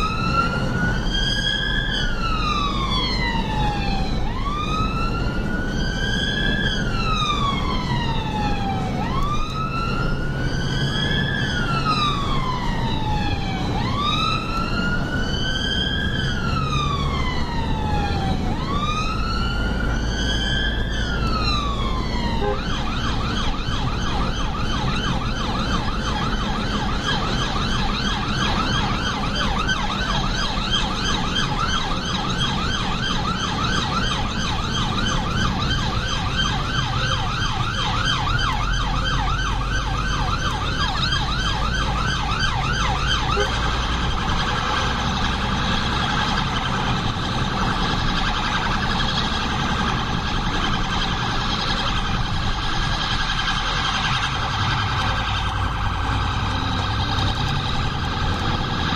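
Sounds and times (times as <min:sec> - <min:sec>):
car engine and road rumble: 0:00.0 - 0:58.9
two-tone electronic siren: 0:00.0 - 0:58.9.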